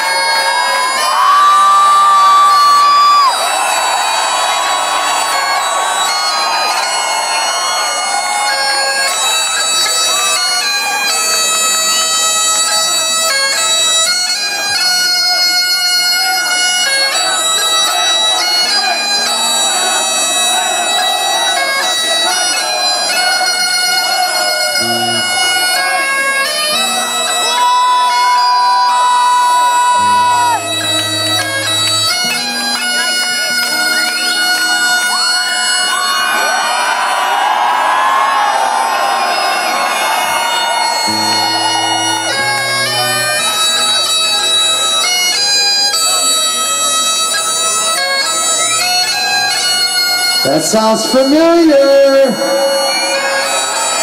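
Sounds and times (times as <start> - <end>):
bagpipes playing a melody: 0.0 - 54.0.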